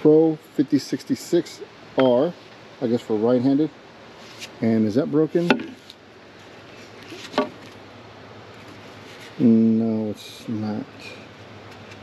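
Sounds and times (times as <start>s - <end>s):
wooden hockey stick handled: 5.4s - 6.0s, 6.9s - 7.8s
wooden stick knock: 5.5s - 5.8s.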